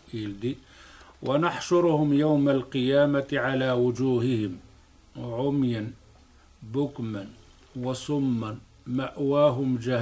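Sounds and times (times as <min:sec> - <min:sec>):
man lecturing into a microphone: 0:00.0 - 0:00.6, 0:01.2 - 0:04.6, 0:05.2 - 0:06.0, 0:06.6 - 0:10.0.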